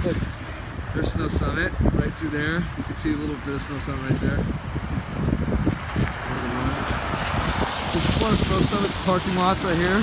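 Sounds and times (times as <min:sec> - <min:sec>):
car tyres on wet slushy road: 0:00.0 - 0:10.0.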